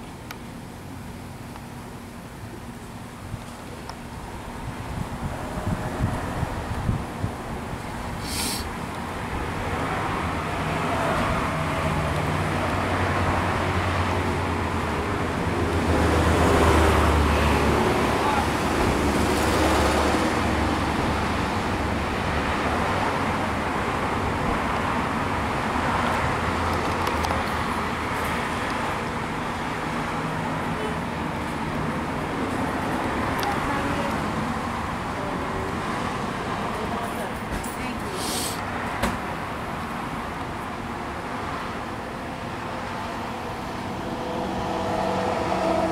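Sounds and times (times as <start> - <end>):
road noise: 0.0 - 45.9.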